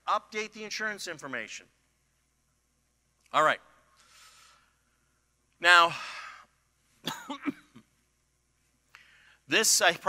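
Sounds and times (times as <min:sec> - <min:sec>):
man coughing: 0:07.0 - 0:07.9.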